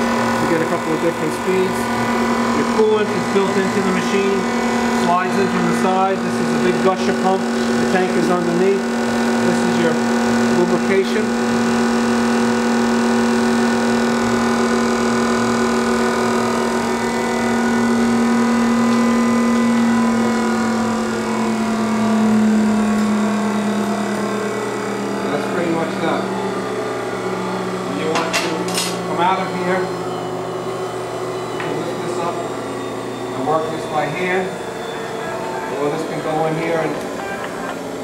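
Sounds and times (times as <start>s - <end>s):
grinder electric motors humming: 0.0s - 38.0s.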